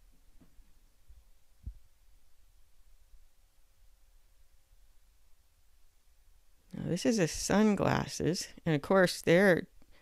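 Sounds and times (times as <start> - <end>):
soft low thump: 1.6 - 1.9.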